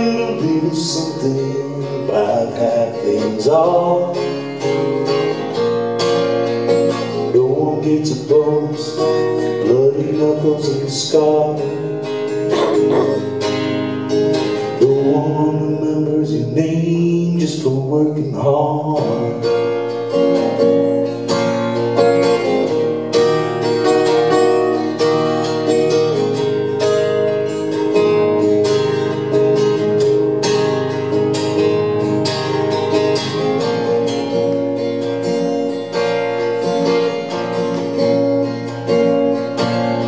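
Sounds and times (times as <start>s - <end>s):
acoustic guitar strumming chords: 0.0s - 40.0s.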